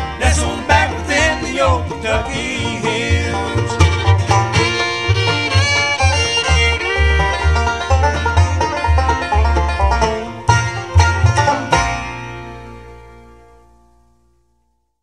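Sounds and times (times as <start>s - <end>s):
bluegrass band playing: 0.0s - 14.1s.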